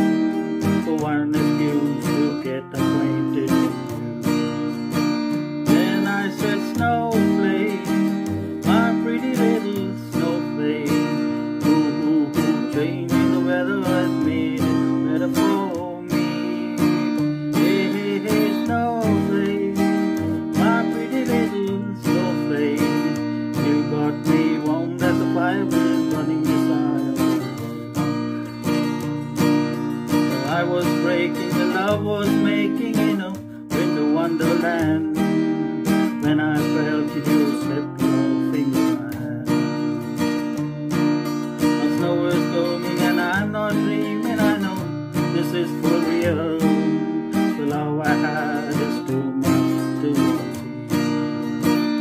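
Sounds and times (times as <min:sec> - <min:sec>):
acoustic guitar strumming chords: 0:00.0 - 0:52.0.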